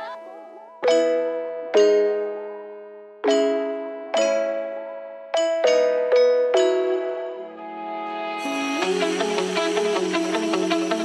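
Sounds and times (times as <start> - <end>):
keyboard chords ringing: 0.0 - 11.0
pop music: 7.4 - 11.0.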